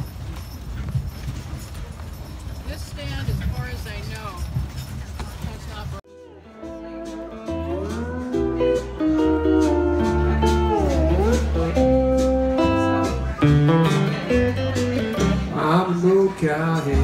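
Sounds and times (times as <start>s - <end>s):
slide lap steel guitar: 6.1s - 15.5s
low bass notes: 6.1s - 17.0s.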